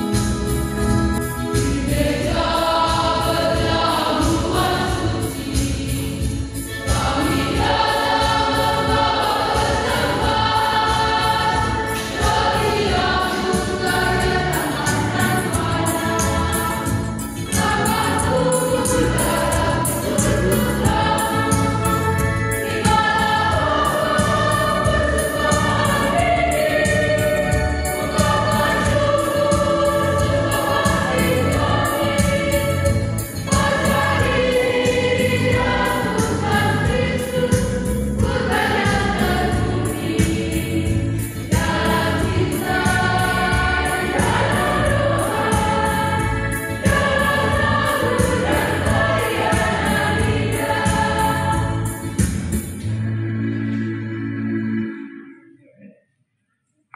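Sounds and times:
choir singing a hymn: 1.2s - 52.6s.

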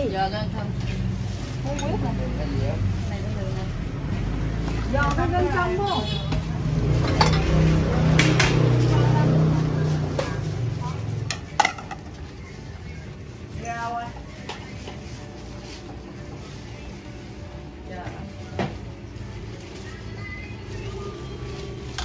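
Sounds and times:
bowls and utensils clinking: 7.0s - 8.5s.

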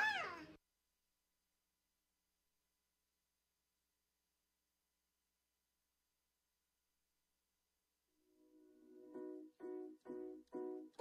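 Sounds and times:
child saying yeah: 0.0s - 0.6s.

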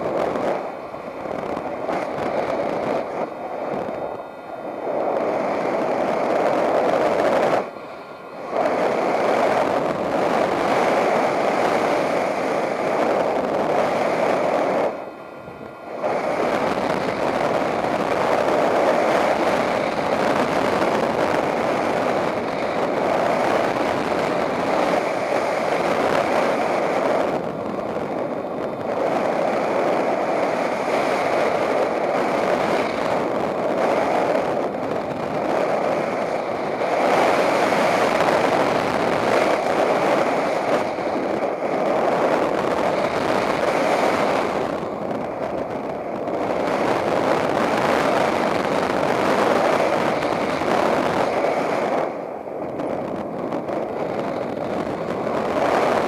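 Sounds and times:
wind rushing over microphone: 0.0s - 56.0s.

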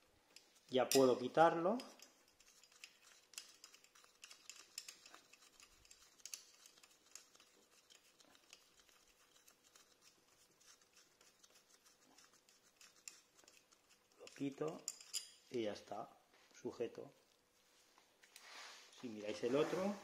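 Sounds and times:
faint scratches: 2.0s - 15.2s, 17.6s - 20.0s.

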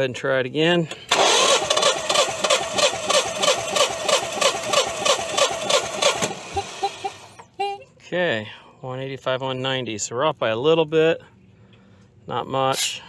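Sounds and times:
engine cranking on starter: 0.8s - 7.4s.

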